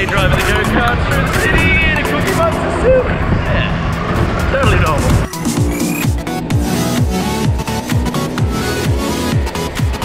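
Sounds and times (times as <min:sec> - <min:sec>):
wind buffeting microphone: 0:00.0 - 0:05.3
go-kart engine running: 0:00.0 - 0:10.0.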